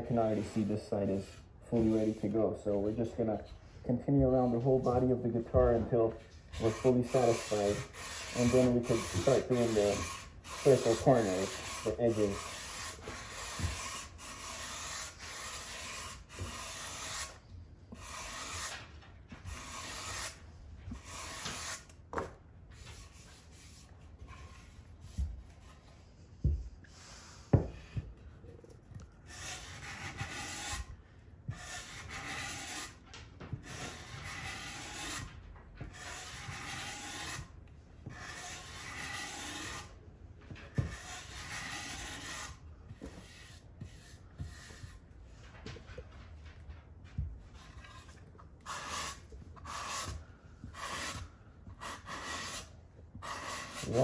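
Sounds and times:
sanding block on wood: 6.6s - 17.4s, 18.0s - 18.8s, 19.5s - 20.4s, 21.0s - 21.8s, 29.3s - 30.9s, 31.5s - 33.0s, 33.6s - 35.3s, 35.9s - 37.5s, 38.1s - 39.9s, 40.9s - 42.6s, 48.7s - 54.0s.

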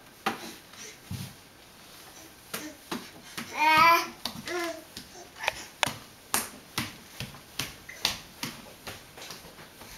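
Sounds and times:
baby's hands slapping hardwood floor: 2.5s - 9.9s.

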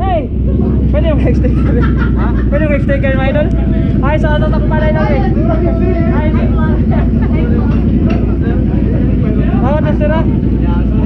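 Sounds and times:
motorcycle engine idling: 0.0s - 11.0s
people chatting: 0.0s - 11.0s.

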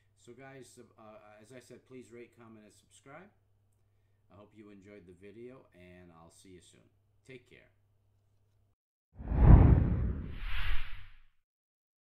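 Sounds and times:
whoosh sound effect: 9.2s - 11.2s.

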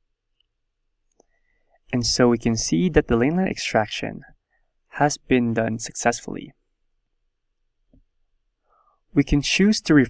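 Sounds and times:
person speaking: 1.8s - 6.6s, 9.1s - 10.0s.

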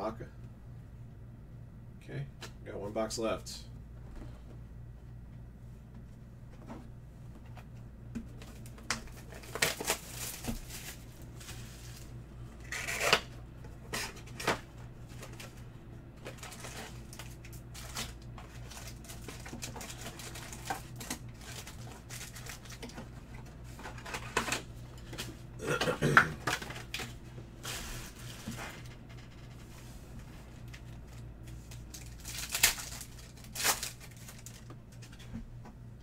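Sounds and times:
low steady hum: 0.0s - 36.0s
foil packs crinkling: 8.4s - 13.3s, 16.2s - 25.3s, 30.5s - 35.2s.

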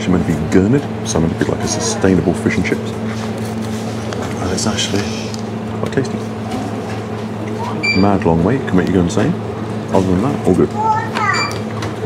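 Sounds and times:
low mechanical hum: 0.0s - 12.0s
high electronic beep: 7.8s - 8.1s.

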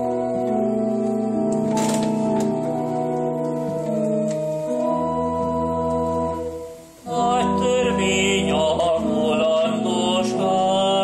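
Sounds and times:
electric keyboard organ chords: 0.0s - 11.0s.

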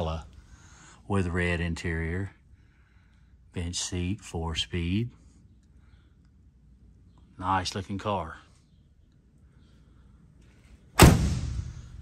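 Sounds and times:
car door slamming: 11.0s - 11.9s.

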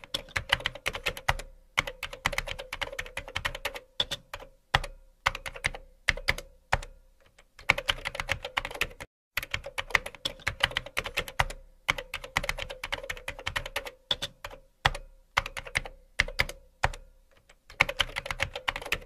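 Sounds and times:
computer keyboard typing: 0.0s - 19.0s.

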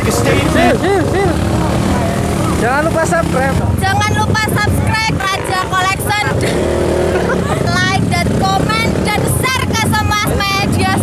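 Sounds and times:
people shouting: 0.0s - 2.9s.

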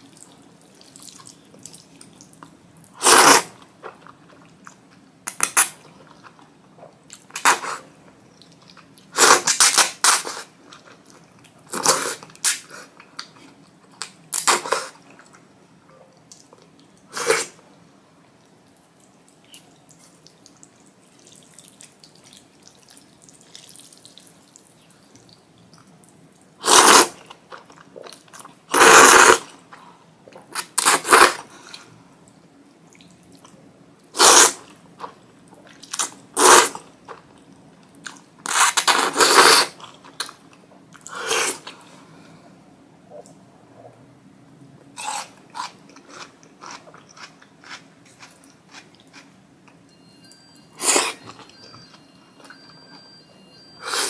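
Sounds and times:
soft chewing: 18.2s - 26.6s, 44.9s - 49.9s.

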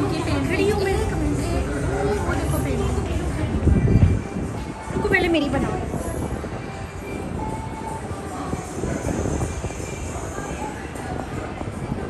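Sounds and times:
faint background music: 0.0s - 12.0s
restaurant background rumble: 0.0s - 12.0s.

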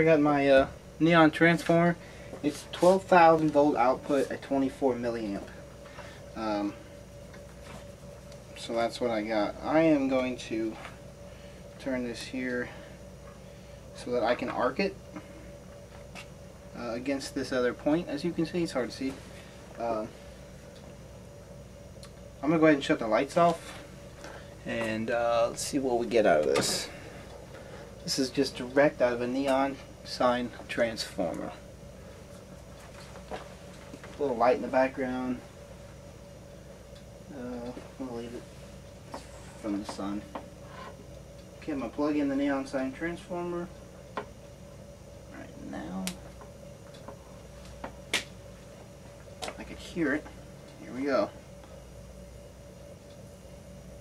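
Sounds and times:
faint low hum: 0.0s - 54.0s.

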